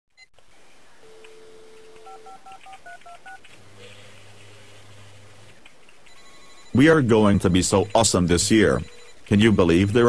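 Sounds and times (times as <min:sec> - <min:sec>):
low steady buzz: 0:00.2 - 0:10.0
telephone dial tone: 0:01.0 - 0:04.2, 0:06.1 - 0:06.8
touch-tone key beeps: 0:06.1 - 0:09.3.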